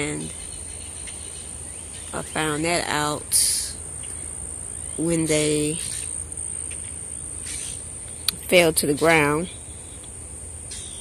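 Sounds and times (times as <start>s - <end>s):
faint outdoor background noise: 0.0s - 11.0s
high-pitched insect trill: 3.8s - 8.2s.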